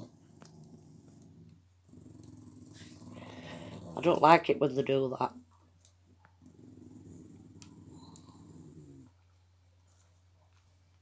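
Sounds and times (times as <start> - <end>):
small dog growling: 0.0 - 4.5, 6.2 - 9.2.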